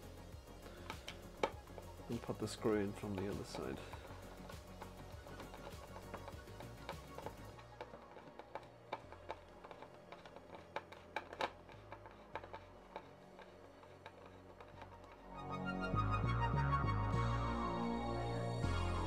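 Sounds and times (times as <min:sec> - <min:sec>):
faint background music: 0:00.0 - 0:19.0.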